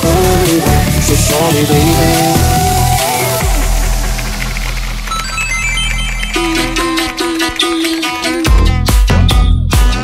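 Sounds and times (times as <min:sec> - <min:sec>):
held deep bass note: 0:00.7 - 0:07.0
high bell-like synth notes: 0:01.8 - 0:07.4.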